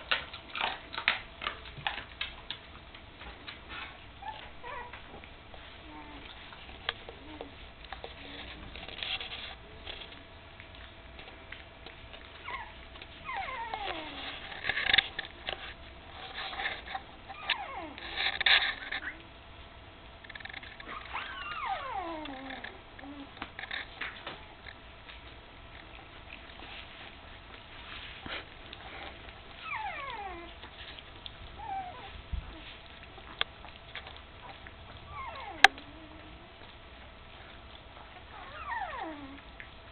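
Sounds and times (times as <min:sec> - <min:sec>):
rustle: 0:00.0 - 0:19.2, 0:20.2 - 0:39.9
dog whimpering: 0:04.2 - 0:06.4, 0:12.4 - 0:14.8, 0:17.3 - 0:18.2, 0:18.8 - 0:19.2, 0:20.8 - 0:23.3, 0:28.3 - 0:33.4, 0:34.4 - 0:39.6.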